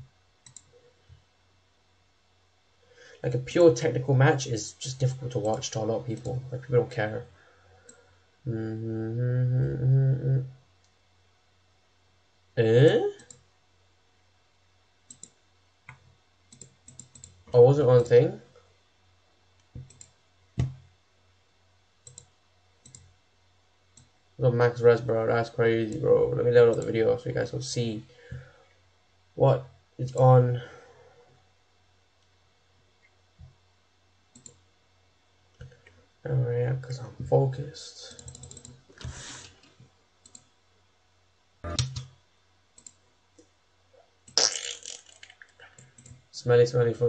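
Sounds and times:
computer mouse clicks: 0.4 - 0.7, 15.1 - 17.4, 19.6 - 20.8, 22.0 - 23.1, 34.3 - 34.6, 38.1 - 38.8, 40.2 - 40.5, 41.7 - 42.1, 42.8 - 43.5, 45.2 - 46.2.

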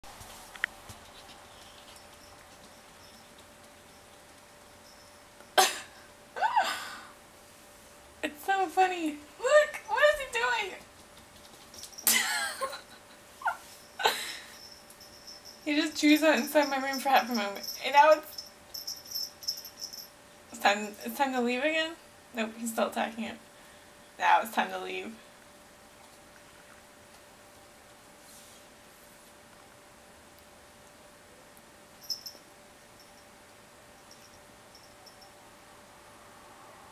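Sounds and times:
faint steady hum: 0.0 - 36.9
soft rustle: 0.1 - 5.1, 13.1 - 20.1, 28.2 - 29.8
person coughing: 5.6 - 6.0.

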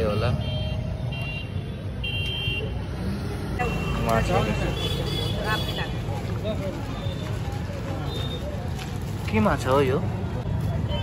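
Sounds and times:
traffic rumble: 0.0 - 11.0
voices: 3.4 - 11.0.

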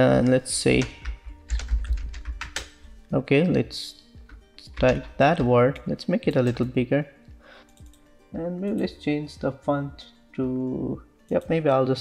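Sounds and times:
computer keyboard typing: 0.8 - 2.8, 7.6 - 8.0.

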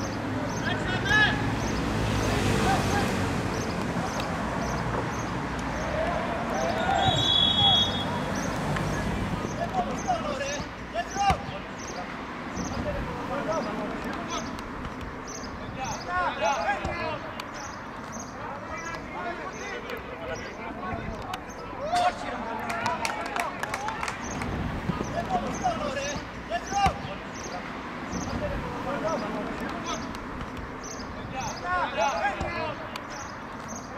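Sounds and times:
football players shouting: 0.5 - 1.5, 2.5 - 4.8, 5.6 - 14.6, 15.5 - 17.7, 18.3 - 27.6, 28.3 - 30.2, 31.2 - 33.2.

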